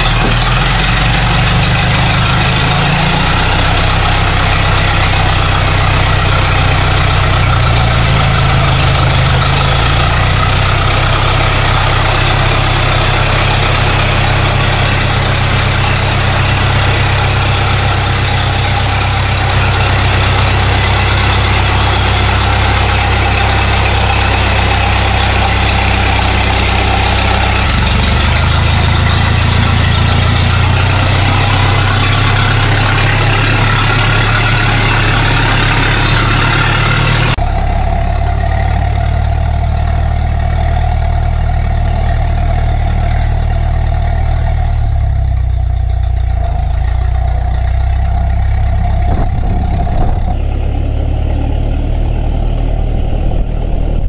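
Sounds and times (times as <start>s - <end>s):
engine running at low speed: 0.0s - 54.0s.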